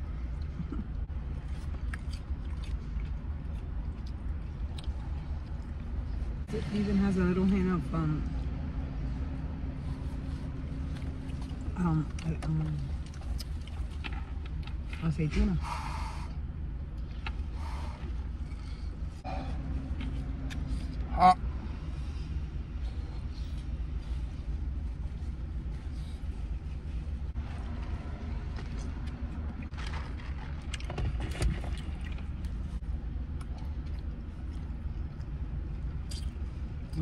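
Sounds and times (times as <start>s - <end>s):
person eating: 0.3s - 6.0s.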